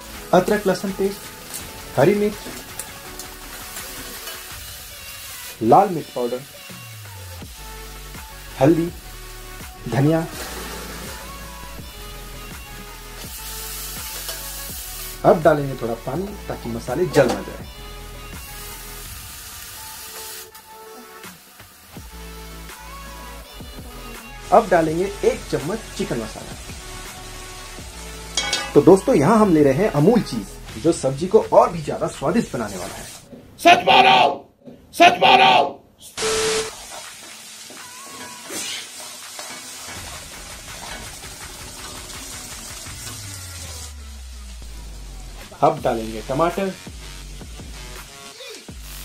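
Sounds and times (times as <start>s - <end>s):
background music with bass line: 0.0s - 19.3s, 21.9s - 32.8s, 40.2s - 49.0s
food sizzling in a pan: 0.0s - 33.3s, 35.2s - 49.0s
water hissing in hot oil: 0.0s - 33.3s, 36.2s - 49.0s
metal ladle scraping a pan: 28.3s - 28.9s, 38.2s - 40.2s.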